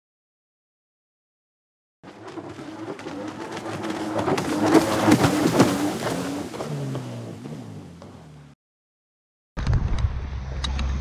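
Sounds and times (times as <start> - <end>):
vehicle engine passing: 2.1 - 8.6.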